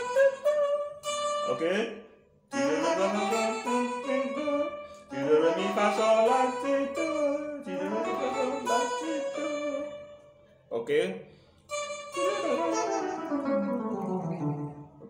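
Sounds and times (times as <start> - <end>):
electric guitar melodic run: 11.8 - 15.0.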